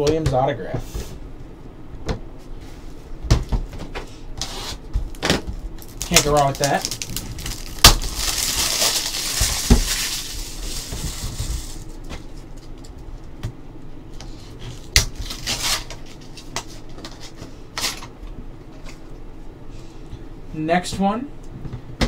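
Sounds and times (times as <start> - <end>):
wrapping crinkling: 5.1 - 13.0.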